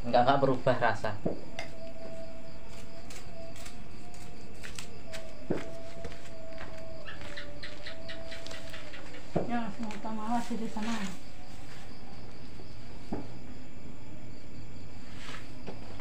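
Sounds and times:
leaves crinkling: 6.3 - 12.0.

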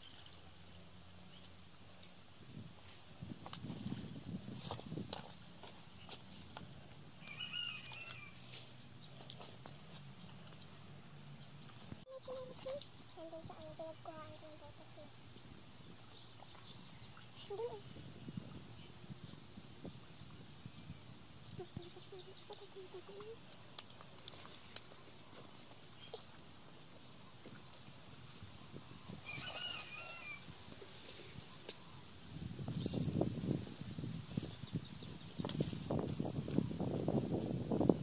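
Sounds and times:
low outdoor background: 0.0 - 38.0.

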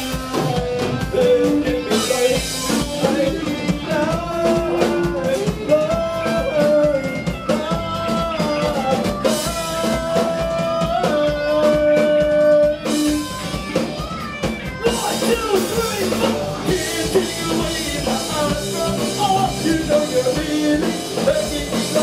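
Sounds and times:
lead singer: 0.0 - 22.0
live rock band playing: 0.0 - 22.0.

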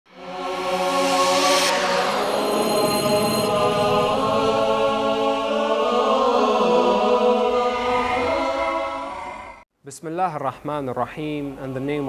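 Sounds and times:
wordless choir-like chant: 0.1 - 9.6.

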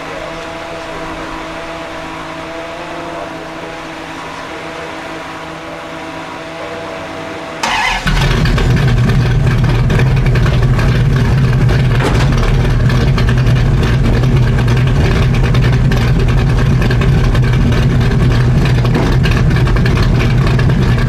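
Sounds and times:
car engine running loud: 0.0 - 21.0.

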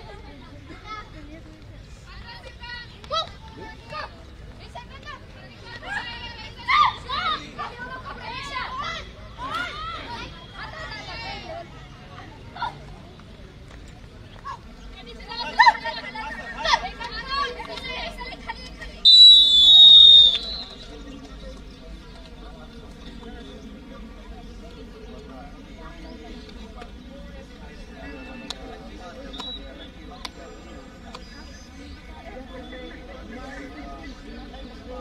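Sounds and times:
faint crowd murmur: 0.0 - 35.0
referee's whistle blast: 19.1 - 20.9.

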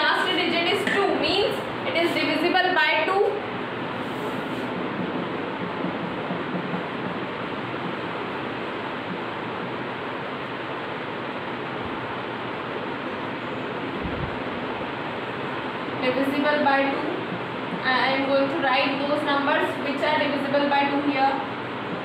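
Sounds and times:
steady rushing noise: 0.0 - 22.0.

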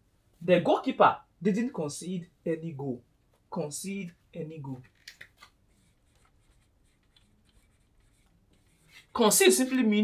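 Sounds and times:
marker scratching on whiteboard: 5.6 - 10.0.

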